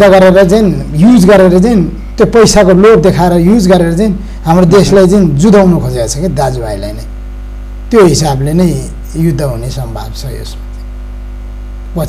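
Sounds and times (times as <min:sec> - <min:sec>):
man speaking: 0:00.0 - 0:07.1, 0:07.9 - 0:10.7
electrical mains hum: 0:00.0 - 0:12.0.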